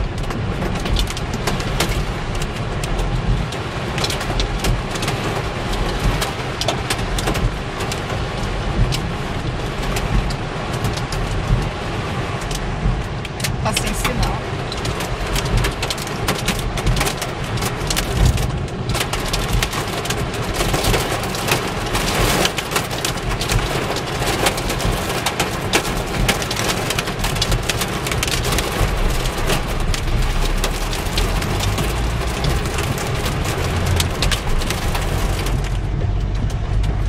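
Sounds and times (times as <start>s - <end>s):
hail and rain on car roof: 0.0s - 37.0s.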